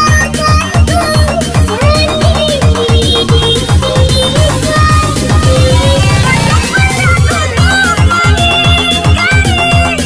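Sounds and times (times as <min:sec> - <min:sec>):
fast bass kicks: 0:00.1 - 0:09.6.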